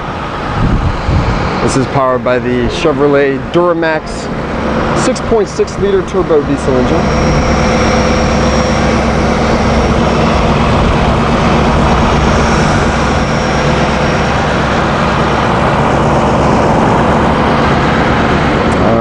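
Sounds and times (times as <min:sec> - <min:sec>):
diesel engine idling: 0:00.0 - 0:19.0
thin high whine: 0:00.0 - 0:19.0.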